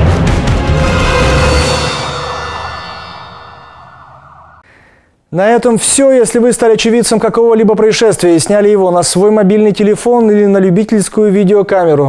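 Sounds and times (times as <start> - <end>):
ringing siren-like chord: 0.4 - 4.6.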